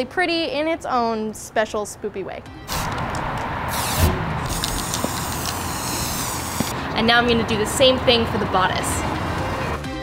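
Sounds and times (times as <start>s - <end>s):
spray can hissing: 2.7s - 3.0s, 3.7s - 6.8s.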